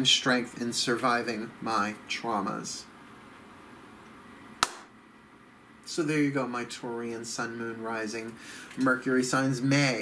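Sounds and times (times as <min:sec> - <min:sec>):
sharp tap: 0:04.6 - 0:04.9.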